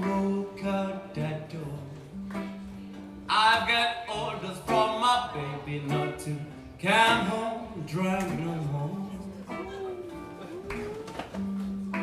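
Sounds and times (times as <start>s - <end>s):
blues band playing live: 0.0s - 12.0s
walking bass: 0.0s - 12.0s.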